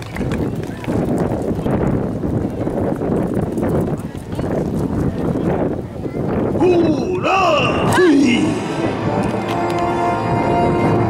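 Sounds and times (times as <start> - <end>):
group calling out together: 6.6 - 9.0.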